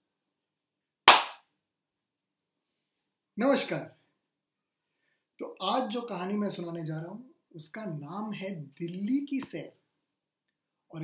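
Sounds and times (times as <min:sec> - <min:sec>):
man clapping hands: 0:01.1 - 0:01.4.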